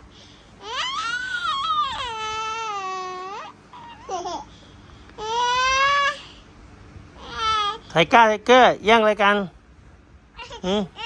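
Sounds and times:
toddler wailing: 0:00.6 - 0:04.4, 0:05.2 - 0:06.3, 0:07.2 - 0:07.8.

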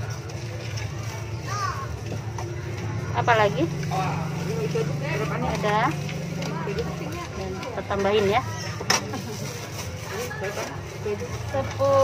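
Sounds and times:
people talking: 0:03.1 - 0:09.2.

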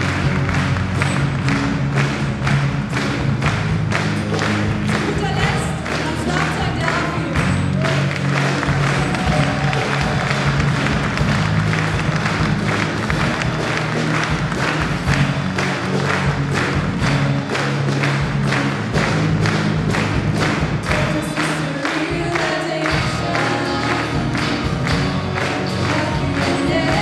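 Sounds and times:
audience clapping along: 0:00.0 - 0:27.0
live pop band playing: 0:00.0 - 0:27.0.

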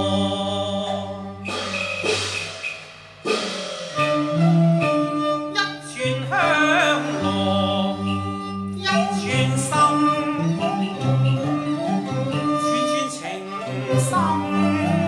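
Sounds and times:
traditional opera instrumental music: 0:00.0 - 0:02.5, 0:04.0 - 0:15.0
percussion burst: 0:01.4 - 0:05.0.

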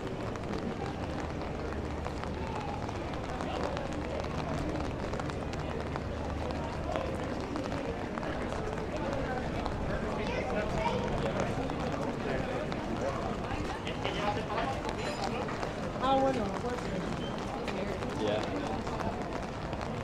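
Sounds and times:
chatter of passers-by: 0:00.0 - 0:20.0
footsteps on wet paving: 0:00.0 - 0:20.0.

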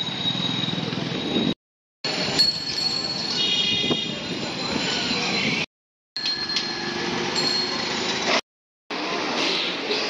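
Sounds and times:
traffic and wheels rumbling: 0:00.0 - 0:10.0.

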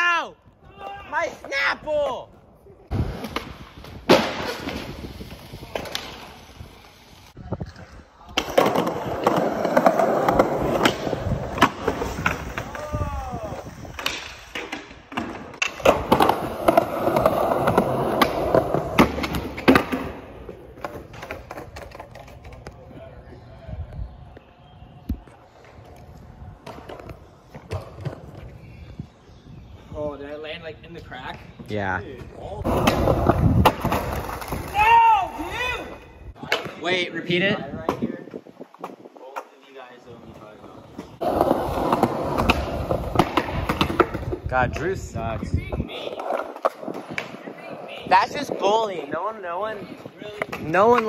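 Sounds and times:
skateboard wheels rolling on concrete: 0:00.0 - 0:51.0
skateboard clacking on ground: 0:41.0 - 0:48.0.

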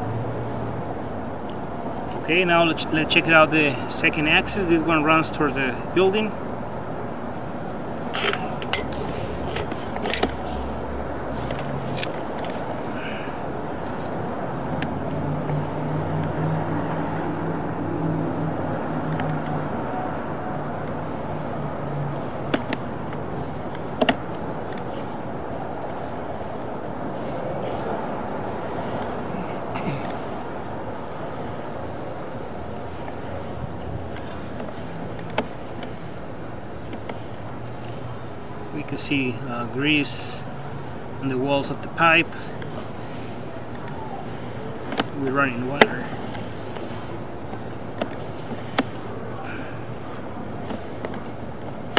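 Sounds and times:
street traffic noise: 0:00.0 - 0:51.9
sharp clicks and knocks: 0:22.4 - 0:24.9, 0:34.5 - 0:36.0, 0:44.8 - 0:45.2.

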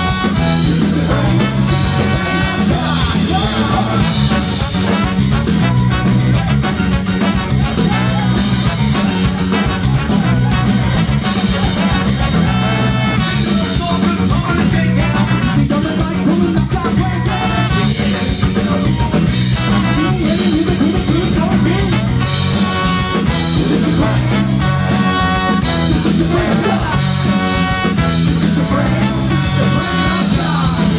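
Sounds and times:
ska band playing live: 0:00.0 - 0:30.9.

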